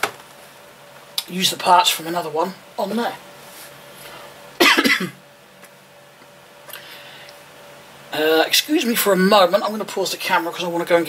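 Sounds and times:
man coughing: 4.6s - 5.2s.

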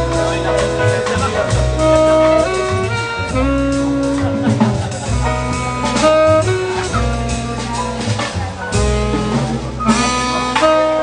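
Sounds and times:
drum kit: 0.0s - 11.0s
tenor saxophone solo: 0.0s - 11.0s
upright bass: 0.0s - 11.0s.

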